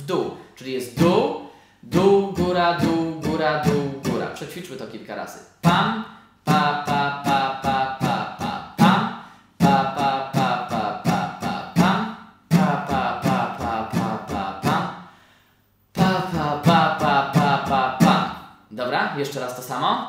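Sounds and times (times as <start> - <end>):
acoustic guitar strumming: 1.9 - 4.4, 5.6 - 15.2, 16.0 - 18.5.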